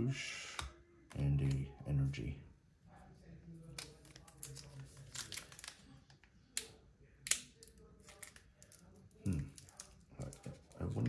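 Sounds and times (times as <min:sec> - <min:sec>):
cards rustling and clicking: 0:03.6 - 0:11.0.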